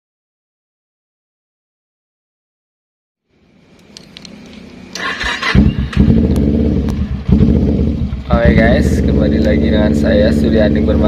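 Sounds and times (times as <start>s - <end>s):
starter motor cranking: 4.9s - 6.4s
motorcycle engine revving: 4.9s - 11.0s.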